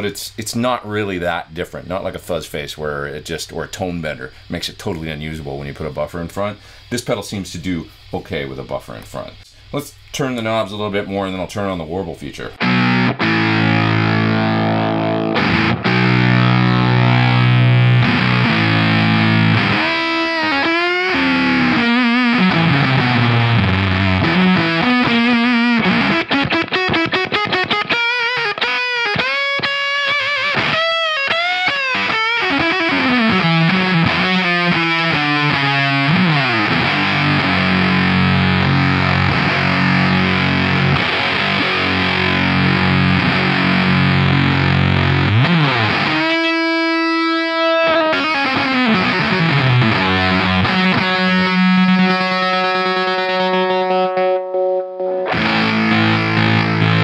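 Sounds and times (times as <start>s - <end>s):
distorted electric guitar chords: 12.6s - 57.0s
fuzz guitar lead with string bends: 12.6s - 57.0s.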